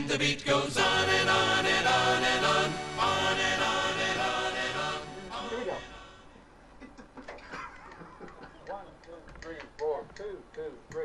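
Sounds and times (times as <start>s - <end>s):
people talking: 5.3s - 6.0s, 6.8s - 11.0s
person laughing: 6.8s - 9.3s.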